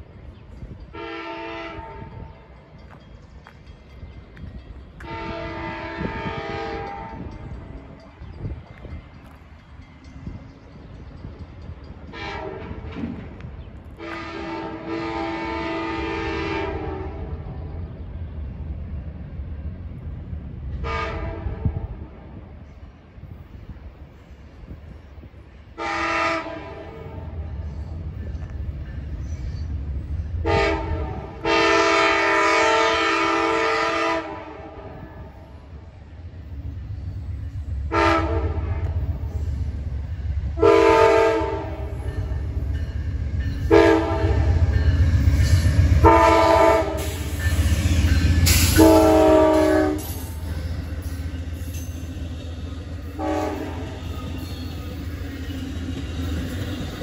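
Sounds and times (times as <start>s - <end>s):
low rumble of train engine: 0.0s - 57.0s
locomotive air horn blasts: 0.9s - 2.2s, 5.0s - 7.2s, 12.1s - 12.9s, 14.0s - 17.4s, 20.8s - 21.9s, 25.8s - 27.4s, 30.4s - 35.3s, 37.9s - 39.0s, 40.6s - 42.0s, 43.7s - 44.7s, 45.9s - 50.6s, 53.2s - 54.4s.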